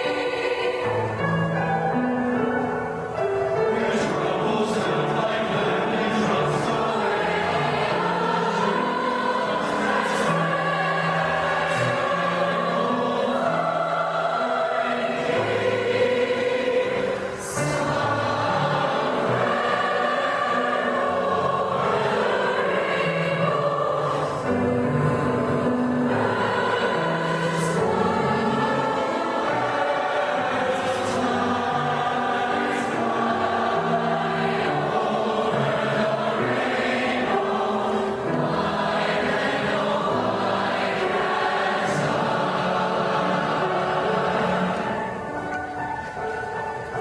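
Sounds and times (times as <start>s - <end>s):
mixed choir singing in harmony: 0.0s - 47.0s.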